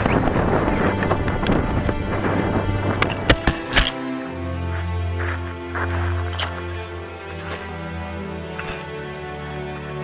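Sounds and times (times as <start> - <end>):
wind rushing over microphone: 0.0 - 3.8
music: 0.0 - 10.0.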